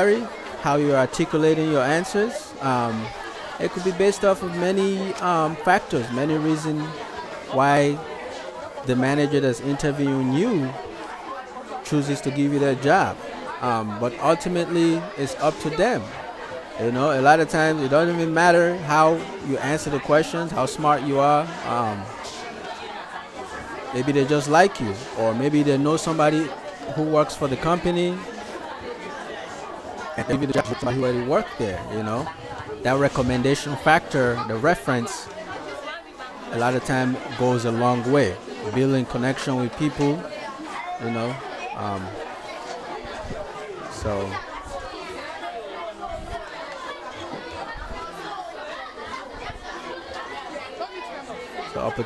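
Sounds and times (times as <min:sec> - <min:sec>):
children chattering: 0:00.0 - 0:52.0.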